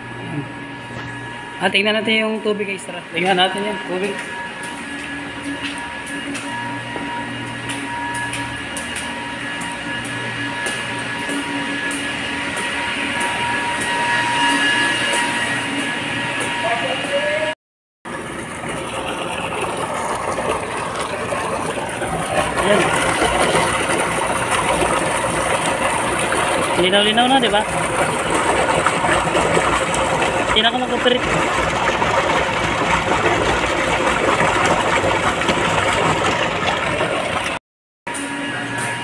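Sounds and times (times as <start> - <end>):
pumps and motors humming: 0.0 - 39.0
water gushing into concrete basin: 18.0 - 37.6.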